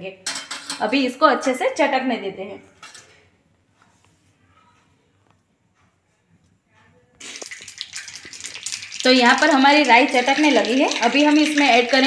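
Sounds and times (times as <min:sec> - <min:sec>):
seeds spluttering in hot oil: 0:07.2 - 0:12.0.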